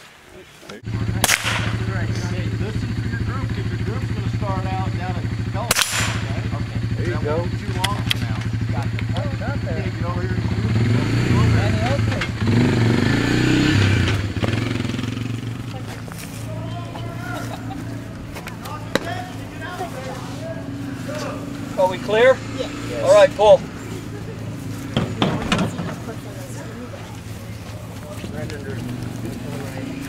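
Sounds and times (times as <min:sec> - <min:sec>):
people talking: 0:00.3 - 0:12.6, 0:15.3 - 0:30.0
gunshot: 0:01.2 - 0:01.9, 0:05.7 - 0:06.4
low engine hum: 0:06.2 - 0:30.0.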